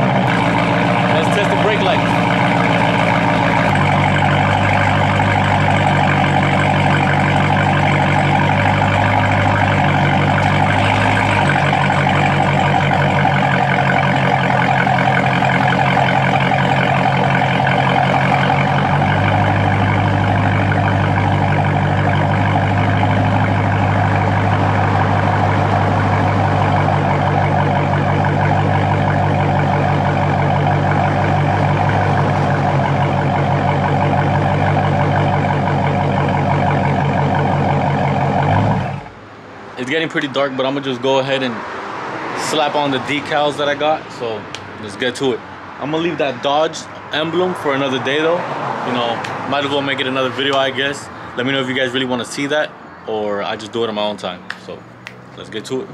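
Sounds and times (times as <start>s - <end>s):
car engine idling: 0.0s - 55.9s.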